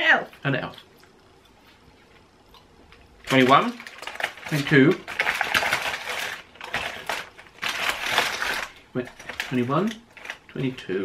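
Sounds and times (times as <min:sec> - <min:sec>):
cardboard tearing and crackling: 0:03.3 - 0:10.4.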